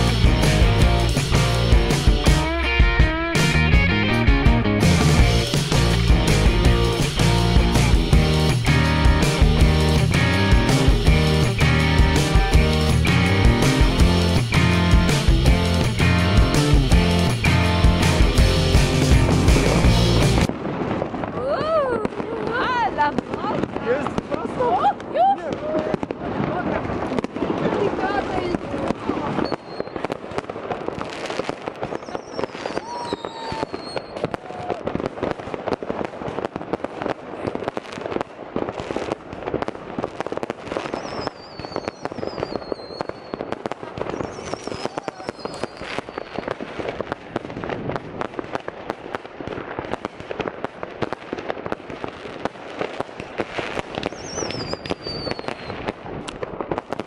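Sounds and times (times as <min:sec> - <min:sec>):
fireworks crackling and banging: 0:00.0 - 0:57.0
fireworks whistling: 0:04.8 - 0:57.0.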